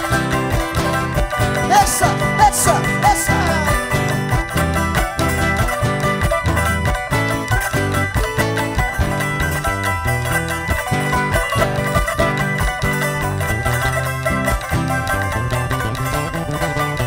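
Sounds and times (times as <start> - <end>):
plucked and strummed strings: 0.0 - 17.0.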